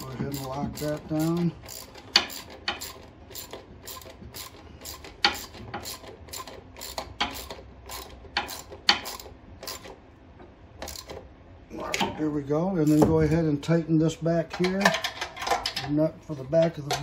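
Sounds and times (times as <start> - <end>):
ratcheting wrench clicking: 0.0 - 10.0, 10.8 - 11.2.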